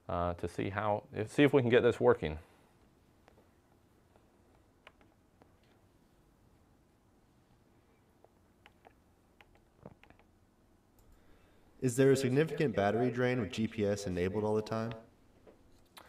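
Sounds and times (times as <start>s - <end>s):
laptop keyboard typing clicks: 8.6s - 10.3s.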